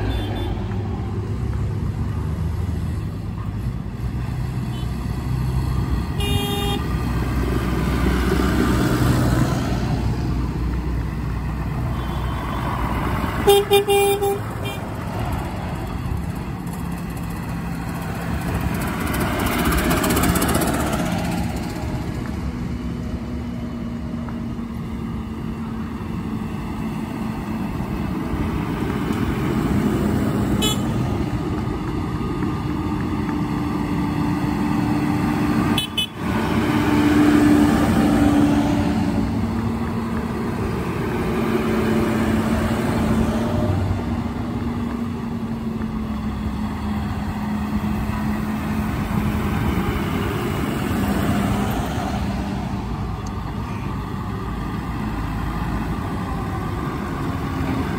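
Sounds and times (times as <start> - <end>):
tractor diesel engines passing: 0.0 - 57.9.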